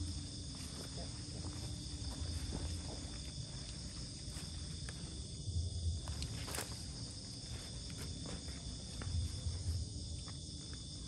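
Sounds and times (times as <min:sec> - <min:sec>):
night insects chorus: 0:00.0 - 0:11.0.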